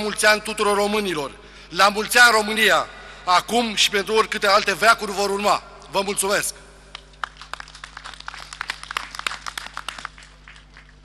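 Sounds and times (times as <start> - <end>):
crowd applause: 7.2 - 11.0.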